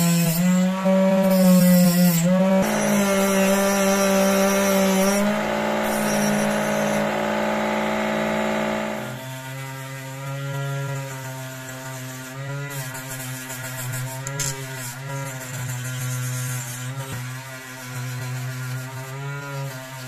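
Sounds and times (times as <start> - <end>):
rotary tool whining and humming: 0.0 - 11.1.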